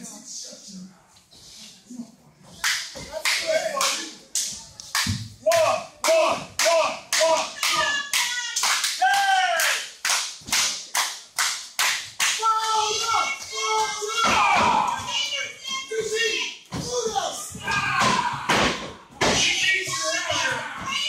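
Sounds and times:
audience clapping in rhythm: 2.6s - 13.8s
voices shouting along: 5.6s - 9.8s, 12.4s - 21.0s.

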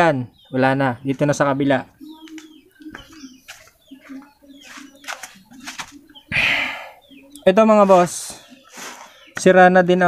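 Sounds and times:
bird cooing: 1.9s - 9.4s.

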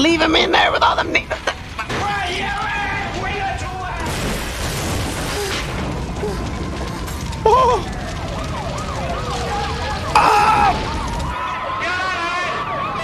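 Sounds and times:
fire engine siren wailing: 5.3s - 13.0s.

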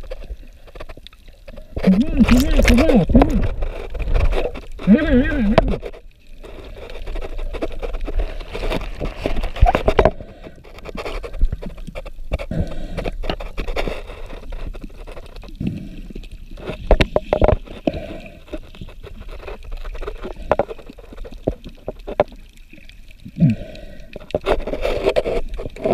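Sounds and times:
water sloshing and gurgling underwater: 0.0s - 25.9s.

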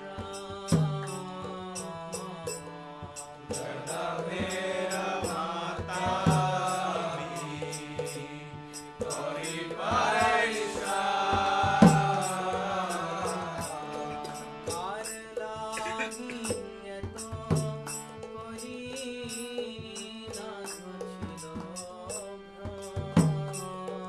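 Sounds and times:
man singing devotional chant: 0.0s - 24.0s.

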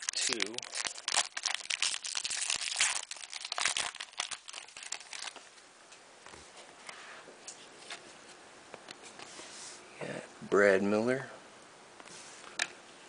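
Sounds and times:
cards rustling and clicking: 0.0s - 1.3s
foil pack tearing and crinkling: 0.0s - 5.4s.

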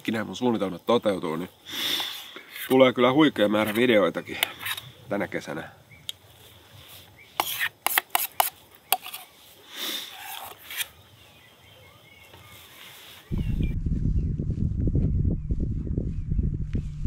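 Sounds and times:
metal scrape: 3.6s - 4.9s, 7.4s - 10.9s
wind on microphone: 13.2s - 17.0s.

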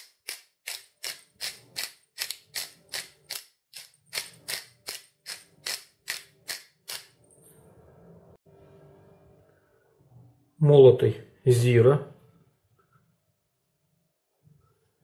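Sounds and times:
spice shaker shaking: 0.1s - 6.4s.

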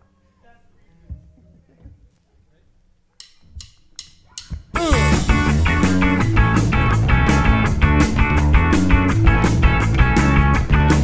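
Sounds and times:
rock band playing: 4.7s - 11.0s.

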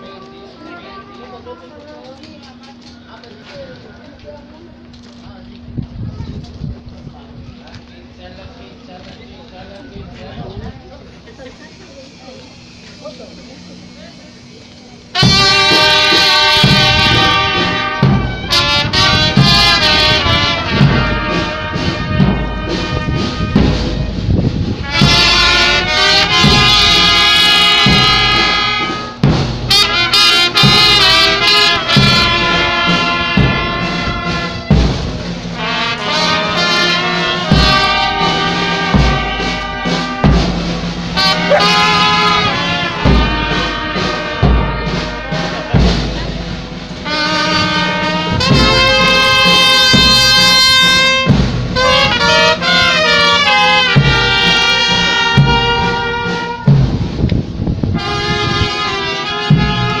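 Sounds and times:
brass band playing: 0.0s - 1.6s, 15.0s - 60.0s
low drum beats: 15.0s - 60.0s.

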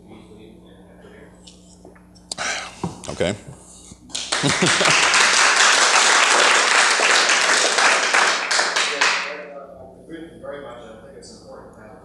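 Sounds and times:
audience applauding: 4.1s - 9.4s.

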